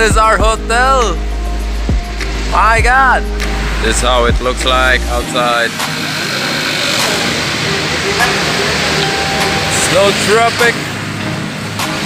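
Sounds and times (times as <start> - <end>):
city street traffic: 0.0 - 12.0
car passing close by: 5.3 - 12.0.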